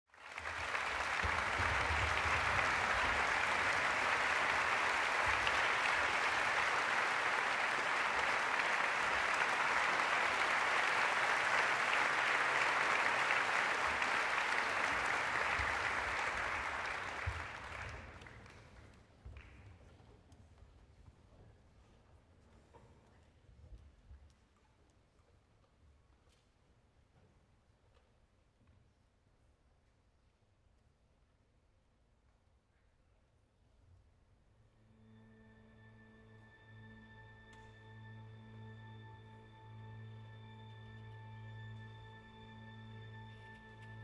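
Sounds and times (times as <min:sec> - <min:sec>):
audience applauding: 0:00.1 - 0:18.8.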